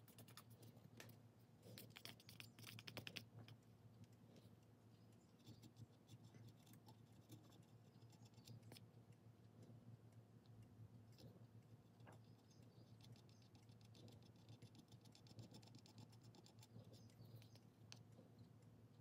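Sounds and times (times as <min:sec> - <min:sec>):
small ticks and clicks: 0:00.0 - 0:19.0
steady low hum: 0:00.0 - 0:19.0.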